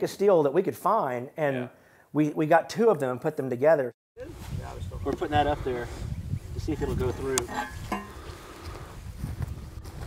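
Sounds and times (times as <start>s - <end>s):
wind rumble on microphone: 4.2s - 10.0s
footsteps: 7.4s - 10.0s.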